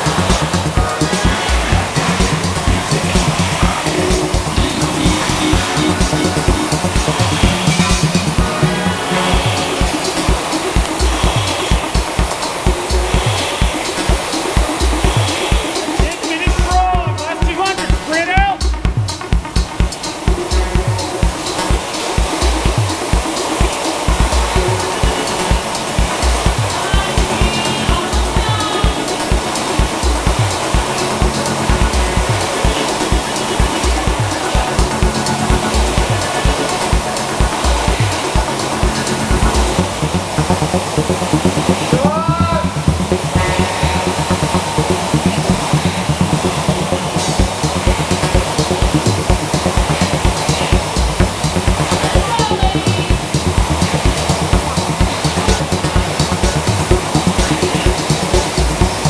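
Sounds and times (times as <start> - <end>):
loud music with drum beat: 0.0 - 59.0.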